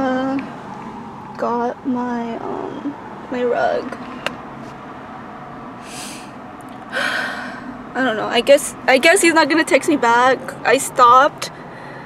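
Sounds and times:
woman breathing heavily: 0:05.8 - 0:07.7, 0:11.5 - 0:12.0.

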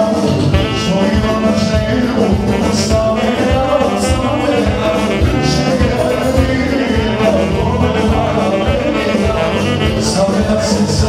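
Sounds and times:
drum beat: 0:00.0 - 0:11.0
person singing: 0:00.0 - 0:11.0
saxophone playing: 0:00.1 - 0:11.0.

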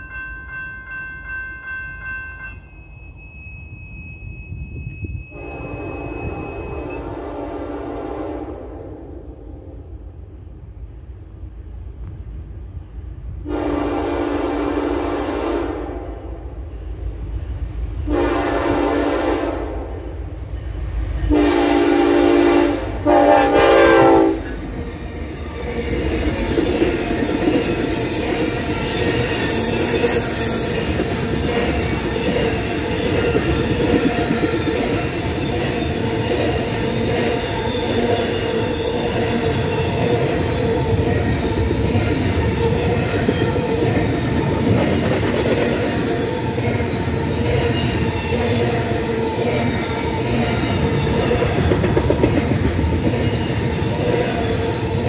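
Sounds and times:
crossing warning bell ringing: 0:00.0 - 0:07.2, 0:20.2 - 0:52.0
train wheels rumbling and clattering: 0:04.5 - 0:55.0
locomotive air horn blasts: 0:05.3 - 0:09.0, 0:13.5 - 0:16.4, 0:18.1 - 0:20.0, 0:21.3 - 0:24.5.

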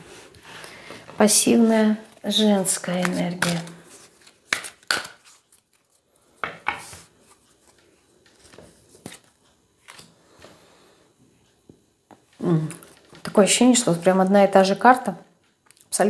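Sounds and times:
cards rustling while shuffled: 0:02.0 - 0:06.0, 0:06.6 - 0:10.1
sharp card snaps: 0:04.5 - 0:05.3.

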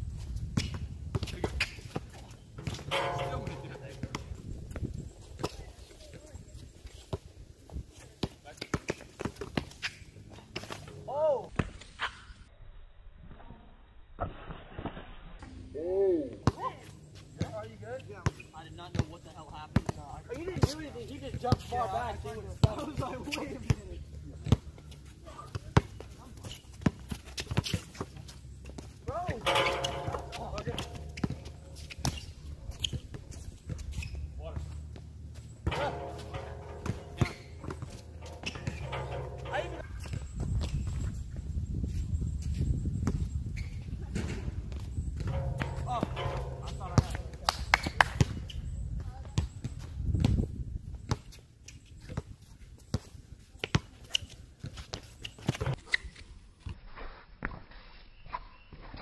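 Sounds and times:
basketball bouncing on hard court: 0:02.6 - 0:04.3, 0:29.3 - 0:32.2, 0:35.6 - 0:39.4
voices calling: 0:02.6 - 0:07.1, 0:15.9 - 0:41.6, 0:42.3 - 0:49.8.

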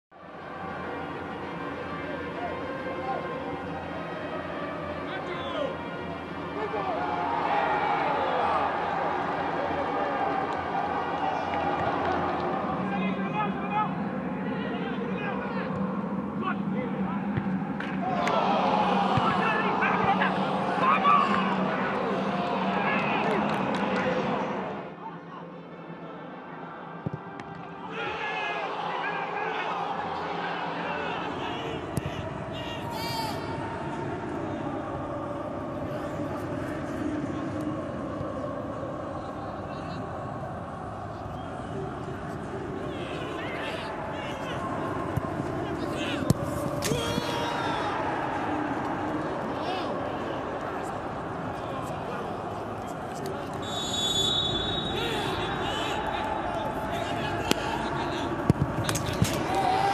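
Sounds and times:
pitch-side ambience: 0:00.2 - 0:59.9
players shouting in stadium: 0:06.5 - 0:14.0, 0:17.9 - 0:23.6, 0:27.8 - 0:34.0, 0:39.3 - 0:59.9.

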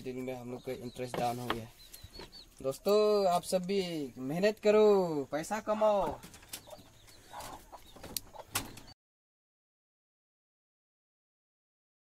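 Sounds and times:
chickens clucking: 0:00.0 - 0:09.0.

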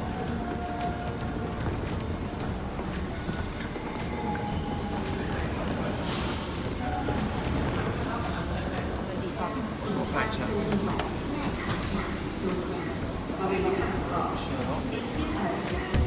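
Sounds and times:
faint music: 0:00.0 - 0:16.0
indoor concourse hum: 0:00.0 - 0:16.0.

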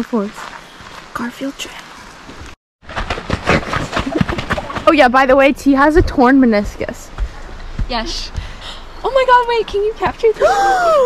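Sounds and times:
footsteps on dirt trail: 0:00.0 - 0:10.2.

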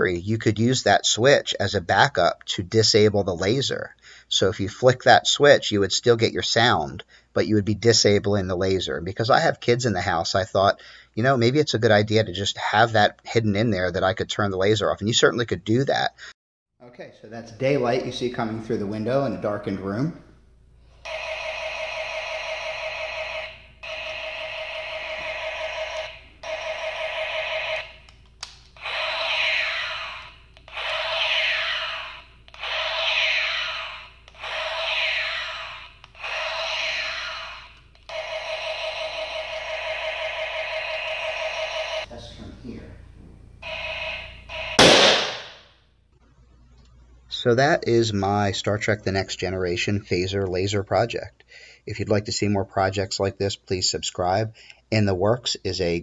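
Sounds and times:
toy phaser buzzing beam bursts: 0:21.0 - 0:28.1, 0:28.8 - 0:42.1, 0:43.6 - 0:45.8
toy phaser warbling sweeps: 0:28.8 - 0:42.1, 0:43.6 - 0:45.6
loud sharp bang: 0:44.5 - 0:45.7.

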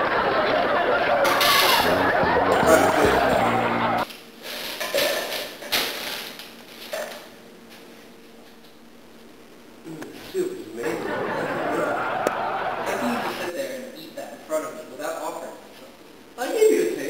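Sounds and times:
voices talking over each other: 0:01.8 - 0:04.0.

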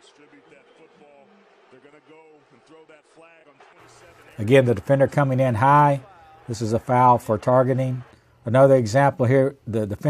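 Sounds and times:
distant man talking on tv: 0:00.0 - 0:10.0.

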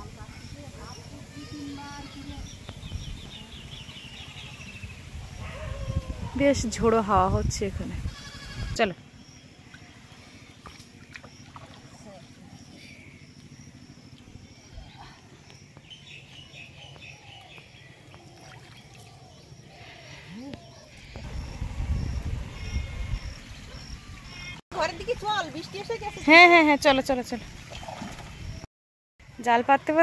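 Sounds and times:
faint distant calls: 0:00.0 - 0:06.6, 0:08.0 - 0:27.0
wind rumbling on microphone: 0:02.1 - 0:08.8, 0:21.0 - 0:25.4.

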